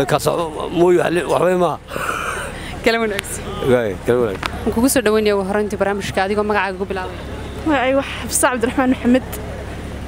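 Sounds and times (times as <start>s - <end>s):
street traffic hum: 0.0s - 10.0s
woman speaking: 2.7s - 3.6s, 4.6s - 9.4s.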